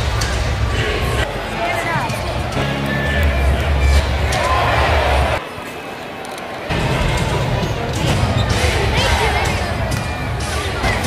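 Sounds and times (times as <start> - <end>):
arena music over loudspeakers: 0.0 - 5.4, 6.6 - 11.0
crowd voices: 0.0 - 11.0.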